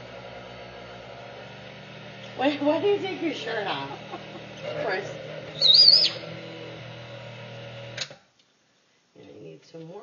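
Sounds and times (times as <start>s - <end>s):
blender motor humming: 0.0s - 8.1s.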